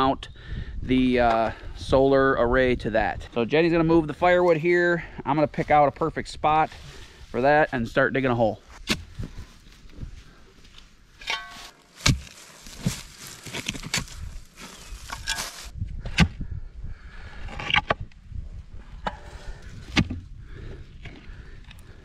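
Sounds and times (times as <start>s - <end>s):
scraping and soil rustling: 3.4s - 15.8s
shovel striking dirt: 8.8s - 9.2s, 11.2s - 16.4s.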